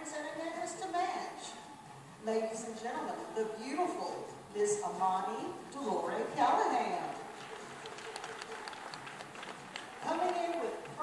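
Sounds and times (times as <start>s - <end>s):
faint murmur in hall: 0.0s - 11.0s
scattered handclaps: 7.1s - 11.0s.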